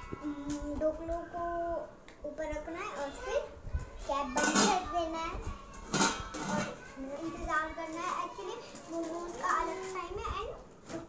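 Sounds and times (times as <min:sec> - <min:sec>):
young child talking: 0:00.0 - 0:11.0.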